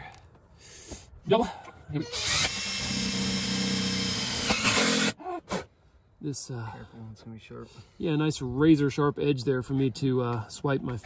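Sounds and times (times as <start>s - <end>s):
impact driver driving screw: 2.2s - 5.2s.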